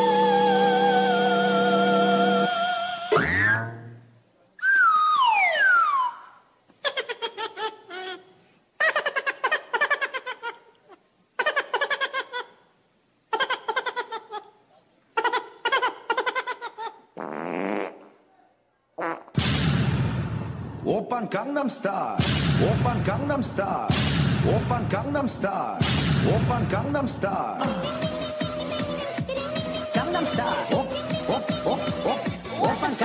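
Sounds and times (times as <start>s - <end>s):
held whistle-like tone: 0.0s - 3.8s, 4.6s - 6.5s
cartoon swooping sound: 2.9s - 3.9s, 4.6s - 6.4s
buzzy voice-like sound effect: 27.5s - 33.0s.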